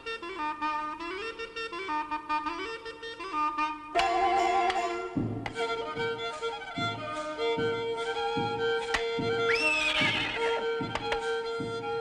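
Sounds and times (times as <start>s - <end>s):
music with held note and soft beat: 0.0s - 12.0s
horse whinnying: 9.5s - 10.6s.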